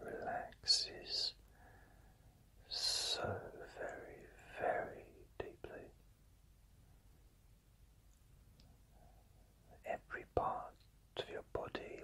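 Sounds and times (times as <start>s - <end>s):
man whispering: 0.0s - 1.4s, 2.6s - 6.0s, 9.7s - 12.0s.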